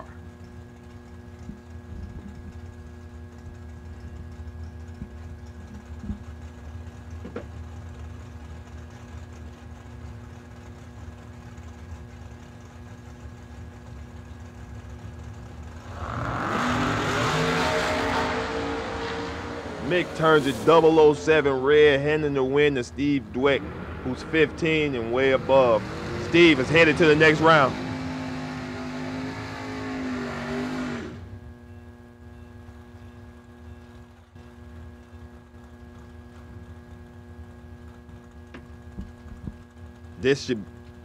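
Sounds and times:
drag racing cars idling: 0.0s - 31.8s, 32.7s - 41.0s
cars launching at full throttle: 15.8s - 31.3s.

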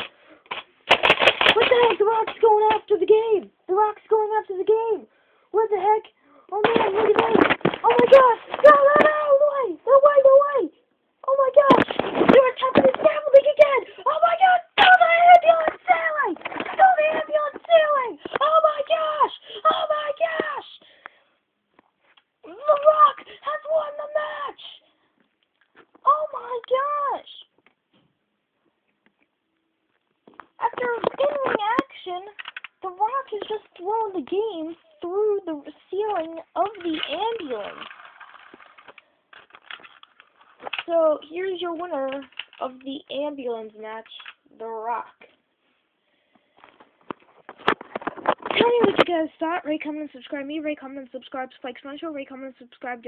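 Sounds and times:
clicks of plastic toys handled: 0.0s - 3.0s, 6.6s - 9.3s, 14.2s - 18.8s, 29.9s - 34.8s, 35.6s - 43.0s, 44.0s - 44.4s, 46.6s - 49.2s
boy yelling excitedly: 5.6s - 20.8s, 22.4s - 24.8s, 26.0s - 27.5s, 30.6s - 37.8s.

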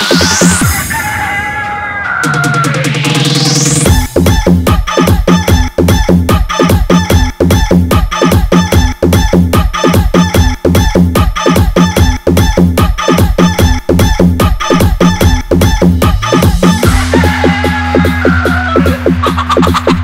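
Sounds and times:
electronic dance beat with deep bass: 0.0s - 20.0s
sampled rooster crowing: 0.6s - 2.9s, 16.7s - 19.8s.

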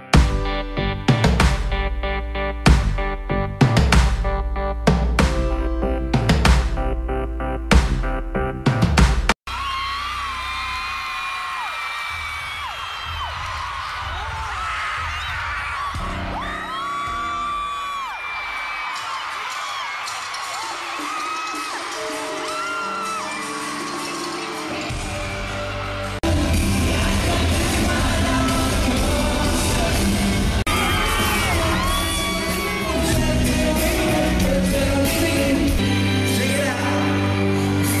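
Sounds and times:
crowd screaming and whooping: 9.5s - 38.0s
live pop-rock band: 21.1s - 38.0s.

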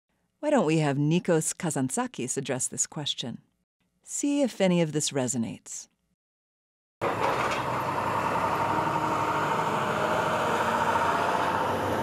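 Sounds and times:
excavator engine running: 7.0s - 12.0s.

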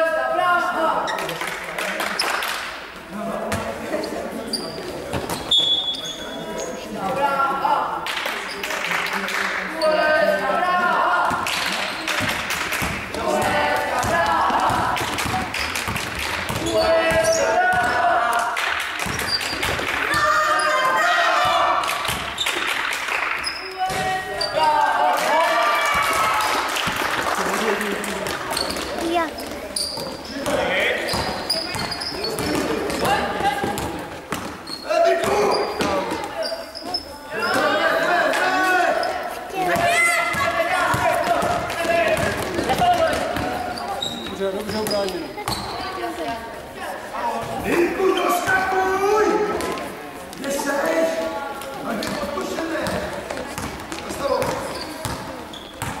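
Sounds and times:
sneaker squeaks: 1.0s - 1.3s, 3.5s - 7.0s, 11.3s - 17.9s, 19.0s - 22.7s, 23.4s - 24.7s, 28.5s - 38.0s, 38.8s - 46.4s, 47.4s - 48.7s, 51.8s - 56.0s
basketball bouncing on floor: 12.2s - 18.0s, 19.0s - 19.8s, 28.6s - 34.6s, 39.6s - 43.6s, 52.8s - 56.0s
people shouting: 20.1s - 21.8s.

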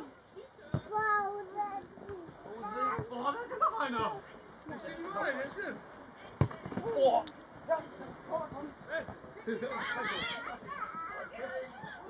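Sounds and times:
football kick thud: 6.4s - 6.9s.

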